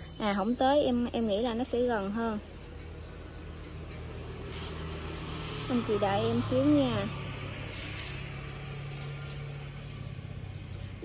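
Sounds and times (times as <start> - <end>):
low engine hum: 0.0 - 11.0
road noise: 0.0 - 11.0.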